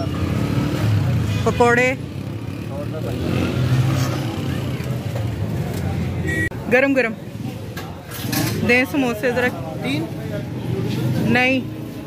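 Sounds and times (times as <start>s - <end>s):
traffic running: 0.0s - 12.0s.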